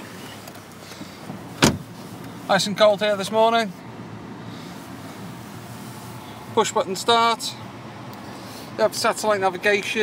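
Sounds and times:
short sharp thump: 1.6 - 1.9.

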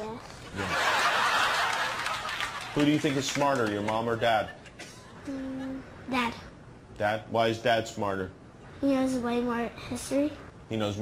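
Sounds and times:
audience laughing: 0.5 - 3.4.

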